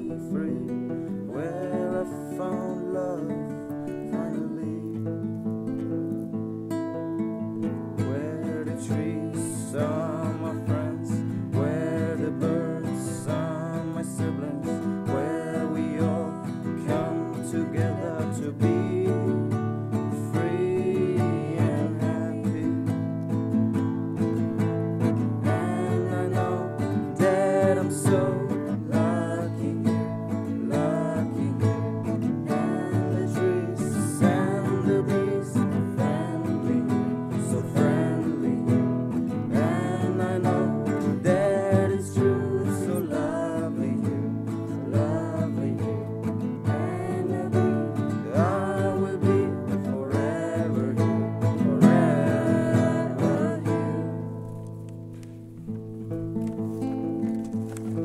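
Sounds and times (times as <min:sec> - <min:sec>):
song with strummed acoustic guitar: 0:00.0 - 0:58.0.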